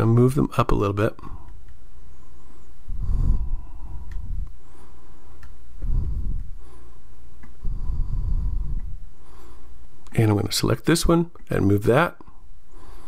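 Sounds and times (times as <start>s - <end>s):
breath puffs on microphone: 2.3s - 10.0s
computer mouse clicks: 5.3s - 6.5s.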